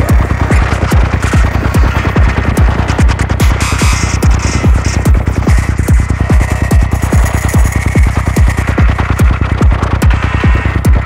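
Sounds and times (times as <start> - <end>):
bass: 0.0 - 11.0
kick drum thumping: 0.0 - 11.0.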